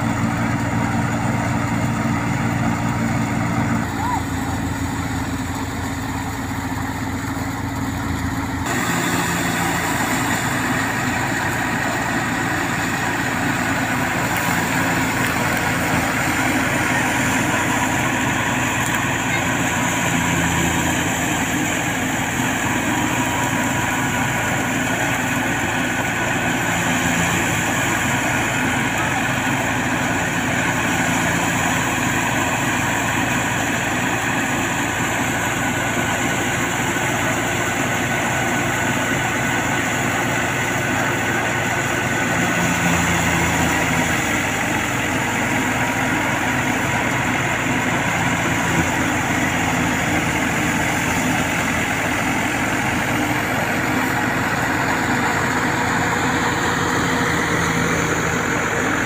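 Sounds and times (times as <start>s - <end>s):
thresher machine running: 0.0s - 59.0s
tractor engine: 0.0s - 59.0s.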